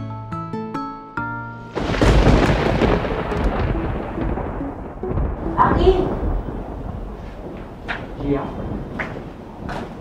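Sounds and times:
thunder clap and rumble: 1.7 - 10.0
plucked string music: 3.0 - 6.2.

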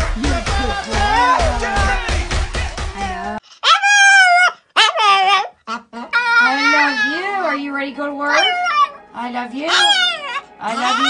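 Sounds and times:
small dog howling: 3.6 - 7.6, 8.3 - 9.0, 9.7 - 11.0.

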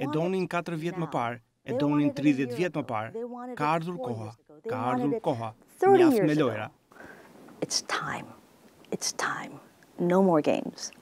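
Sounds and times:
person whispering: 0.0 - 6.5, 9.1 - 9.6
person speaking normally: 0.0 - 6.6.

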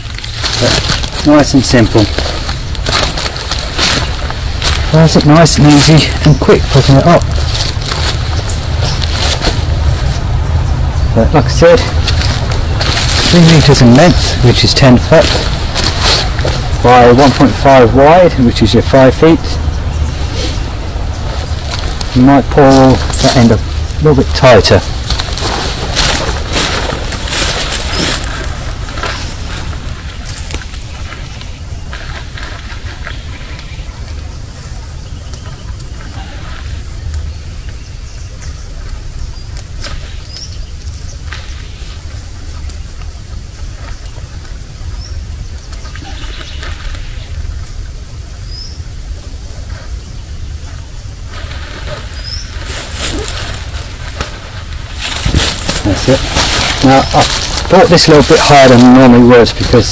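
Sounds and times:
strap rustling: 0.0 - 10.3, 11.5 - 18.2, 20.1 - 33.4, 51.2 - 59.9
birds chirping: 0.0 - 59.9
steady low rumble: 0.0 - 59.9.

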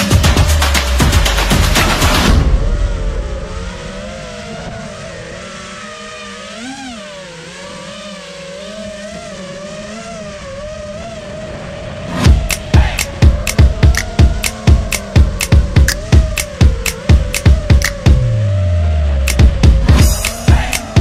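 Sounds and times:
background music with a beat: 0.0 - 2.7, 12.2 - 18.5, 19.3 - 21.0.

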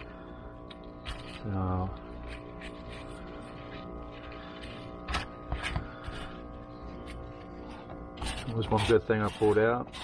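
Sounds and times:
faint steady hum of tones: 0.0 - 10.0.

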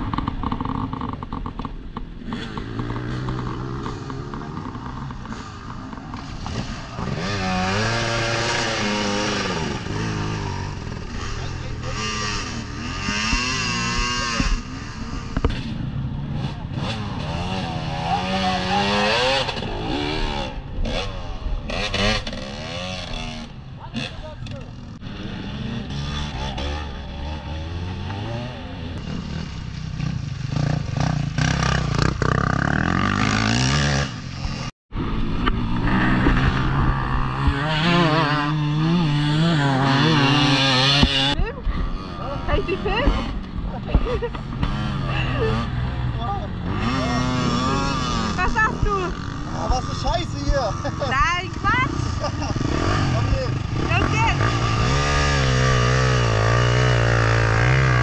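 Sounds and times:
motorcycle engines revving: 0.0 - 58.0.

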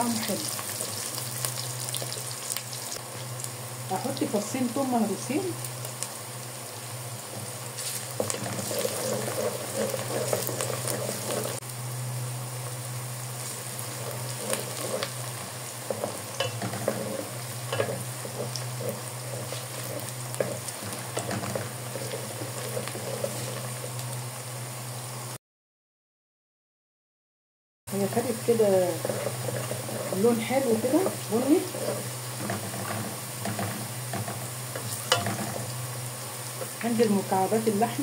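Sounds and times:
onions sizzling in oil: 0.0 - 25.4, 27.9 - 38.0
steady low hum: 0.0 - 25.4, 27.9 - 38.0
wooden spoon stirring: 7.3 - 11.6, 13.4 - 24.0, 28.1 - 36.9.

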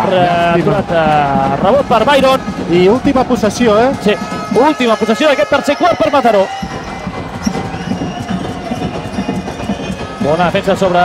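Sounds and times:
crowd noise: 0.0 - 11.0
basketball dribbling on wooden court: 6.9 - 10.6.

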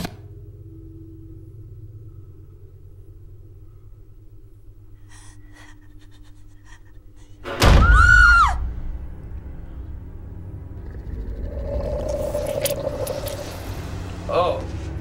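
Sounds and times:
low rumbling drone: 0.2 - 7.5, 8.6 - 15.0
shrill shriek: 7.6 - 8.7.

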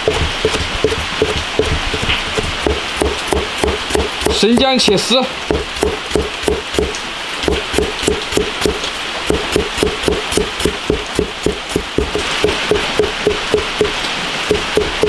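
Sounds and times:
cleaver chopping on cutting board: 0.0 - 15.0.

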